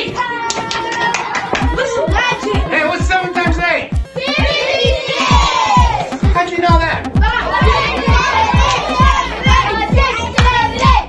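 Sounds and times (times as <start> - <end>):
dance music: 0.0 - 11.0
students shouting and cheering: 0.0 - 11.0
deep kick drum: 3.5 - 11.0.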